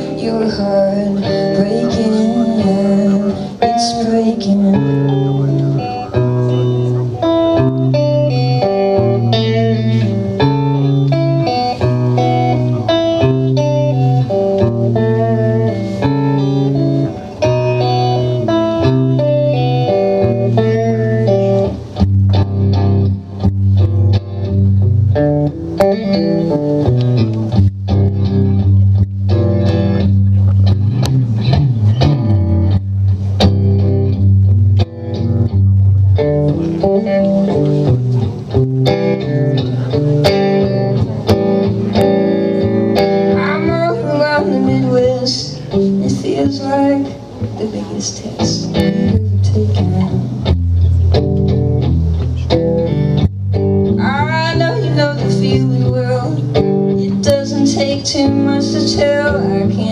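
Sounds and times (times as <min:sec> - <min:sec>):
guitar riff: 0:00.0 - 0:59.9.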